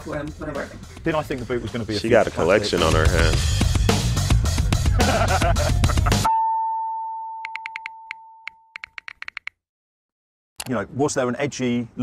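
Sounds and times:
typing clicks sound effect: 0:07.4 - 0:09.6.

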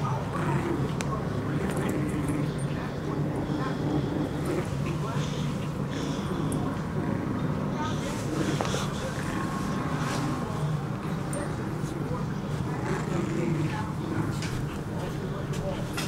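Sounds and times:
steady low hum: 0:00.0 - 0:16.0.

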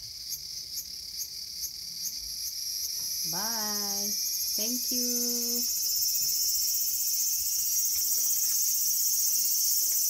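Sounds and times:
cicada buzzing: 0:00.0 - 0:10.0.

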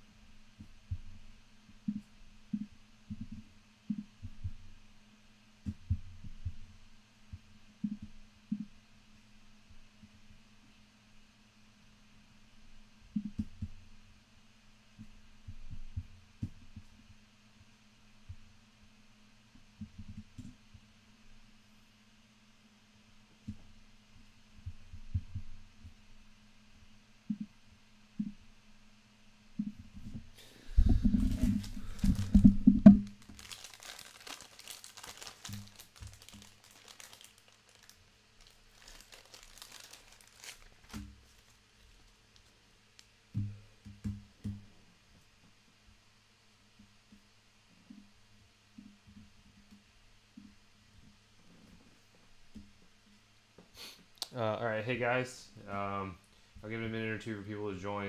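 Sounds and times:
low hum: 0:25.7 - 0:33.8
crinkling and rustling: 0:29.6 - 0:44.6.

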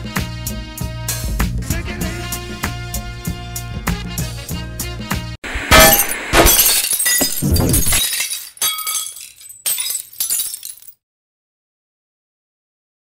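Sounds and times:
glass crashing: 0:05.6 - 0:10.9
tinkling glass shards: 0:05.8 - 0:10.9.

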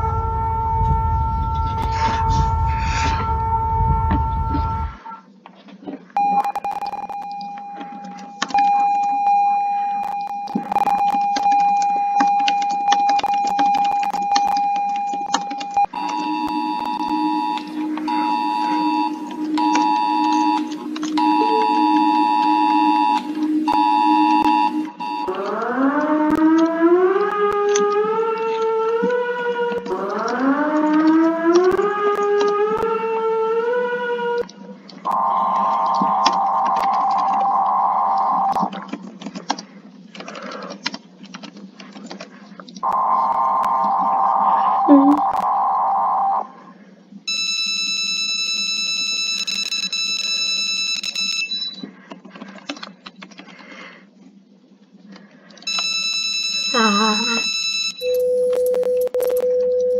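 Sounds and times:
harsh steady tone: 0:00.0 - 0:05.2, 0:06.1 - 0:39.0, 0:42.8 - 0:46.6
rising siren sweeps: 0:00.0 - 0:05.2, 0:13.9 - 0:38.8, 0:42.8 - 0:46.6
steady high alarm tone: 0:00.0 - 0:05.2, 0:06.2 - 0:38.9, 0:42.8 - 0:46.6, 0:47.3 - 0:51.9, 0:55.7 - 0:59.4
keyboard typing clicks: 0:06.2 - 0:09.4, 0:10.0 - 0:32.9, 0:34.9 - 0:44.1, 0:51.0 - 0:53.9
pulsing two-tone beep: 0:06.2 - 0:25.5, 0:35.1 - 0:38.7, 0:42.8 - 0:45.7, 0:56.7 - 0:59.4.

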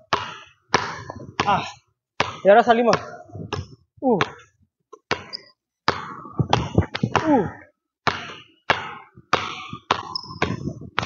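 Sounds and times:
basketball bouncing on hardwood floor: 0:00.1 - 0:01.6, 0:02.2 - 0:04.5, 0:05.1 - 0:07.3, 0:08.1 - 0:11.0.

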